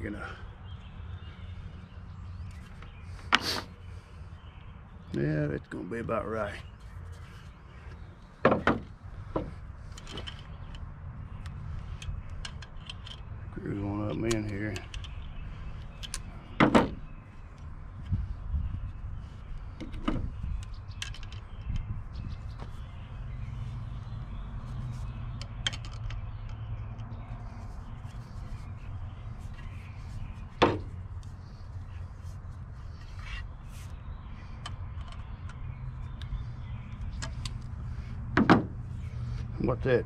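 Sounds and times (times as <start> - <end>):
steady low rumble: 14.8 - 25.5.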